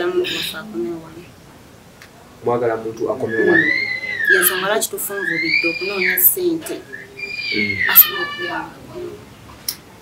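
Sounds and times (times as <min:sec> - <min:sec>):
faint voices: 0:02.1 - 0:10.0
high-pitched falling call: 0:03.2 - 0:08.7.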